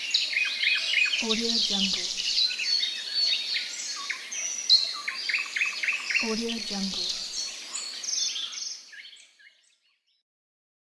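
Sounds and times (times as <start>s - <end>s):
songbirds chirping and trilling: 0.0s - 10.2s.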